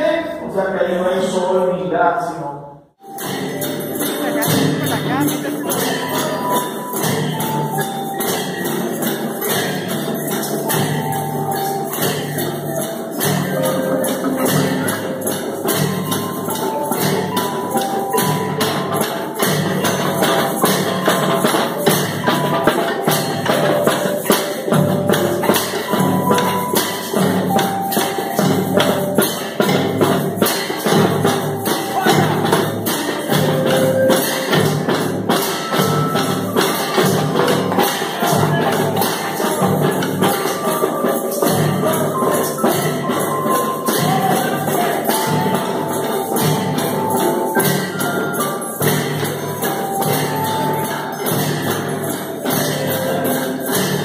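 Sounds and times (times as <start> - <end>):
simple tune: 3.0 - 54.0
snare drum: 3.0 - 54.0
triangles struck: 3.0 - 54.0.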